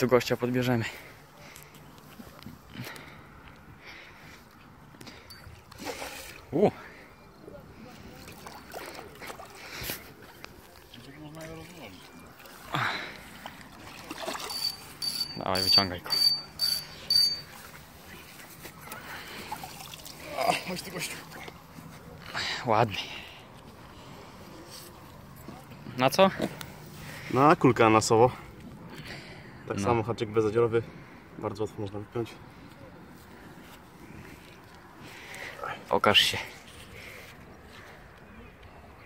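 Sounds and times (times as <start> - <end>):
fish splashing in water: 13.3 - 15.0, 18.9 - 20.5
short high-pitched beeps: 14.4 - 17.6.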